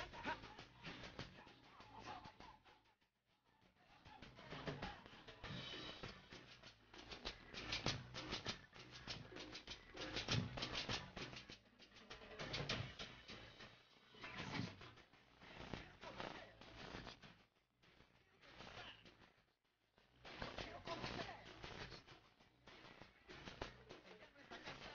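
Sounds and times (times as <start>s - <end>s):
steady percussion rhythm: 4.2s - 14.1s.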